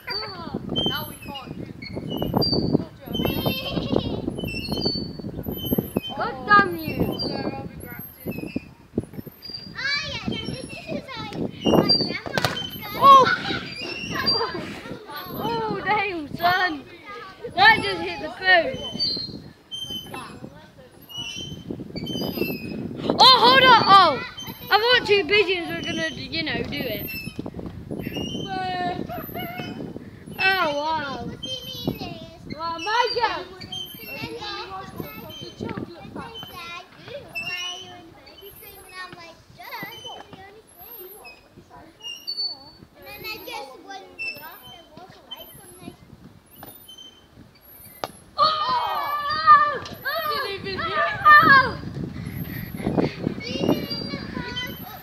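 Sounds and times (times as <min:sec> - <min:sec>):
children shouting during play: 0:09.7 - 0:18.8, 0:23.0 - 0:25.6, 0:48.4 - 0:52.0.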